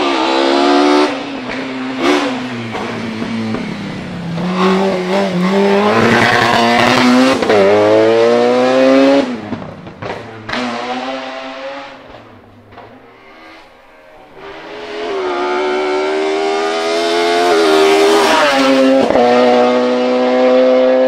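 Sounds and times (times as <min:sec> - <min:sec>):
race car engine at high revs: 0:00.0 - 0:21.0.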